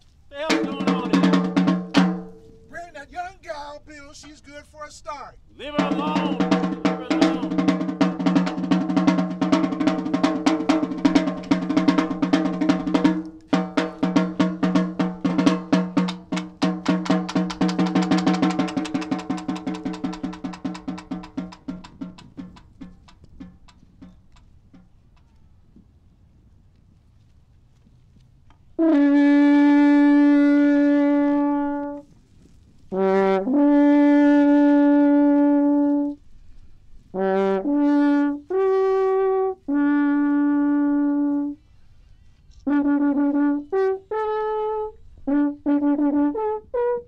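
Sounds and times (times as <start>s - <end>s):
snare drum played with sticks: 0.4s - 2.9s, 5.6s - 24.2s.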